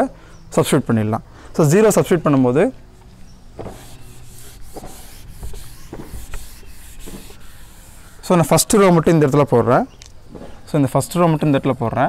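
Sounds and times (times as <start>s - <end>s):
eraser rubbing on whiteboard: 3.6s - 8.9s.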